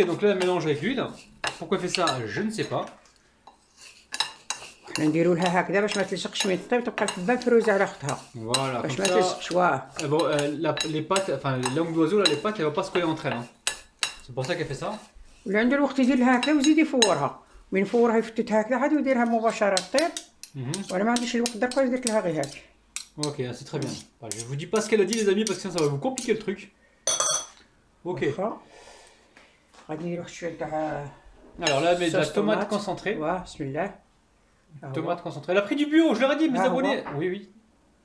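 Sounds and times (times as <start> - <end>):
metal spoon scraping ceramic plate: 0.4 - 2.9, 3.5 - 15.1, 19.8 - 26.4.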